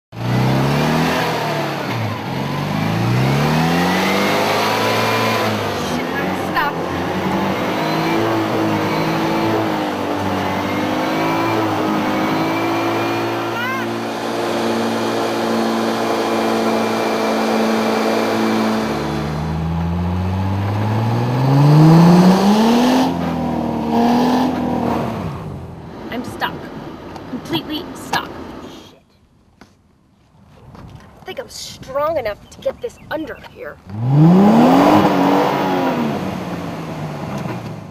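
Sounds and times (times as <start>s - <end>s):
car engine revving: 0.1s - 28.9s, 33.8s - 37.9s.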